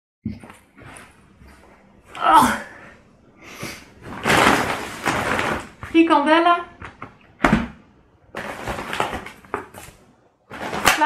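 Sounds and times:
shopping bag rustling: 4.0 - 6.1, 8.4 - 11.0.

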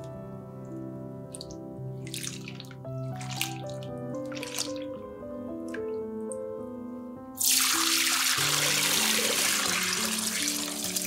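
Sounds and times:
background music with held notes: 0.0 - 11.0
water splashing and dripping: 1.3 - 5.0, 7.4 - 11.0.

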